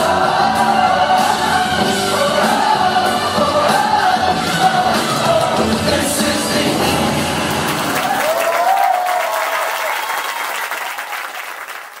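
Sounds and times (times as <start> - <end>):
dance music: 0.0 - 8.4
audience applauding and cheering: 6.6 - 12.0.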